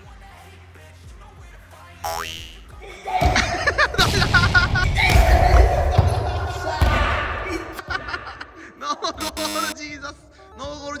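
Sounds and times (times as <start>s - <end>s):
comedic boing sound effect: 2.1s - 2.6s
edited music and effects: 9.0s - 9.8s.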